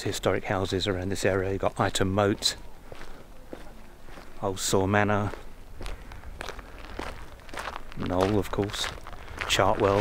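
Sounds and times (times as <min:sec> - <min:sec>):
footsteps on grass: 0:01.8 - 0:10.0.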